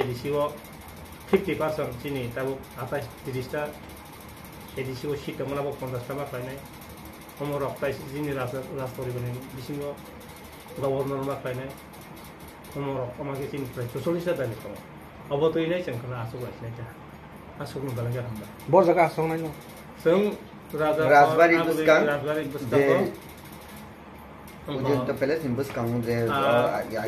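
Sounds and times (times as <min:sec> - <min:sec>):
man speaking: 0:17.6 - 0:23.2.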